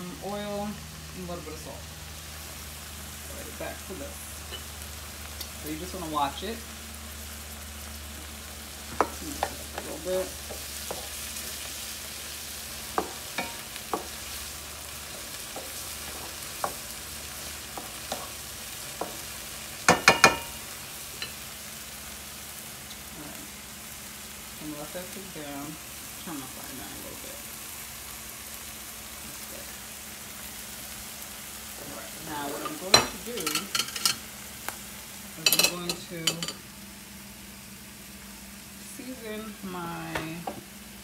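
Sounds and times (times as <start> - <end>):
vegetables sizzling in butter: 0.0 - 41.0
utensil tapping and stirring in pan: 8.8 - 21.4, 32.6 - 34.2.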